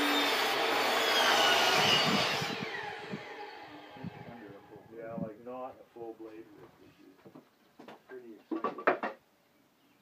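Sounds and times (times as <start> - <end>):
power tool cutting wood: 0.0 - 4.8.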